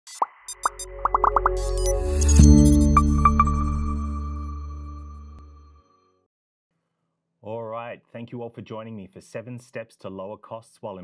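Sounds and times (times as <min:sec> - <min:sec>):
rising popping blips: 0:00.1 - 0:05.2
low synth tone: 0:00.5 - 0:06.0.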